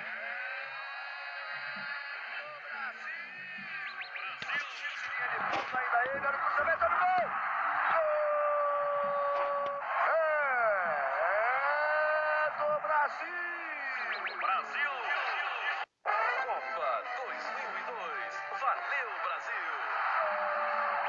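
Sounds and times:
stadium crowd: 0:00.0 - 0:21.0.

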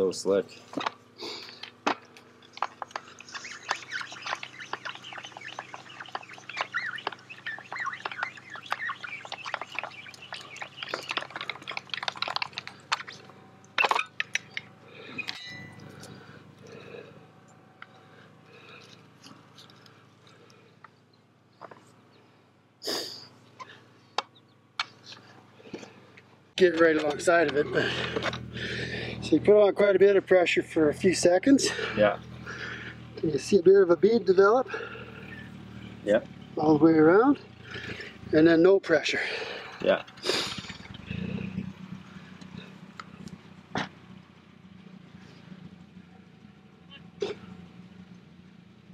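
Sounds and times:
birds chirping: 0:00.0 - 0:48.7.

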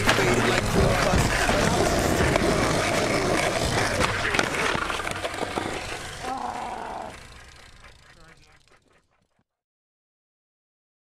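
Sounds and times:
skateboard wheels rolling on asphalt: 0:00.0 - 0:08.2.

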